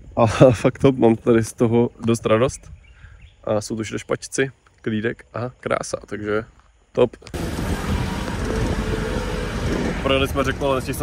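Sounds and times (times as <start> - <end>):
road and wind noise: 7.2 - 11.0
jeep engine drone: 7.4 - 11.0.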